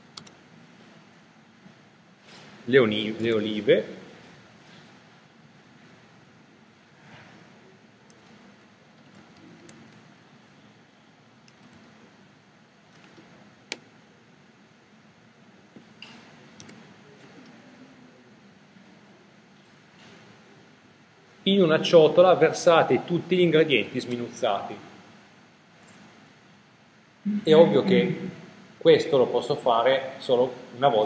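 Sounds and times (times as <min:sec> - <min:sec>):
mouse and keyboard clicks: 0:09.0 - 0:10.0, 0:11.4 - 0:11.9, 0:12.9 - 0:13.9, 0:16.6 - 0:17.6.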